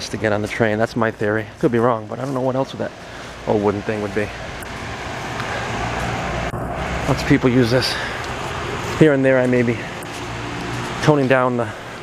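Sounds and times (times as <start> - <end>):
car passing by: 3.1 - 12.0.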